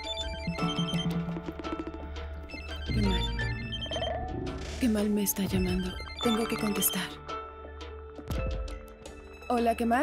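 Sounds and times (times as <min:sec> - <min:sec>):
phone melodic ringtone: 0:05.8 - 0:07.2.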